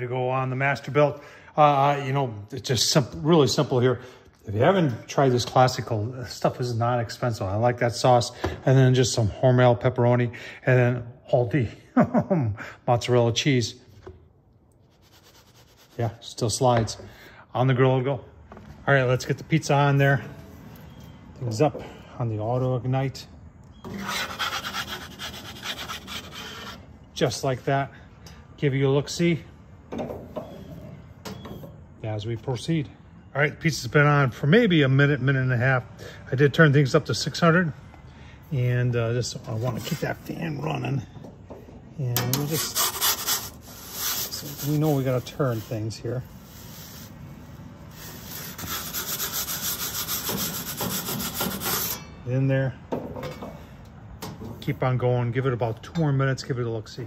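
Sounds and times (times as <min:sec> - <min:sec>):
metal peel scraping pizza stone: 0:23.9 - 0:26.8, 0:42.3 - 0:47.1, 0:47.9 - 0:52.1.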